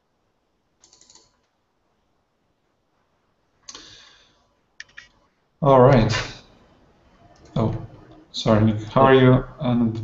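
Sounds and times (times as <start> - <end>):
computer keyboard keystrokes: 0.8 - 1.5.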